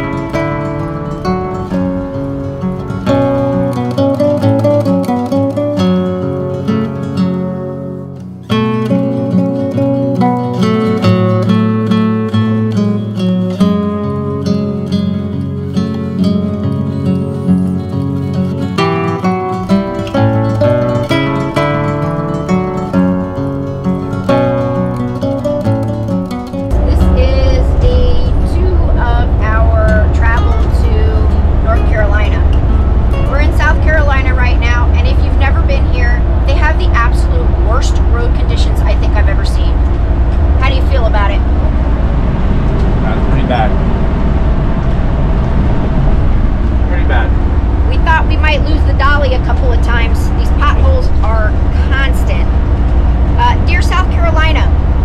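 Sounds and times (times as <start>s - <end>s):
acoustic guitar music: 0.0s - 55.0s
road and engine rumble: 0.0s - 55.0s
woman talking: 26.7s - 32.6s, 33.3s - 39.8s, 40.6s - 41.4s, 47.9s - 52.5s, 53.4s - 54.8s.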